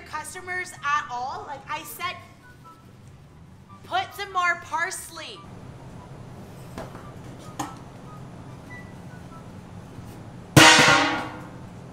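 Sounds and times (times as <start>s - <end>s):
comic drum and cymbal crash: 10.6s - 11.4s.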